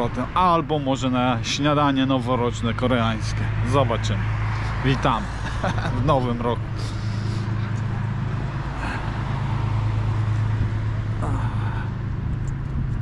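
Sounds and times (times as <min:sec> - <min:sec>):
road traffic hum: 0:00.0 - 0:13.0.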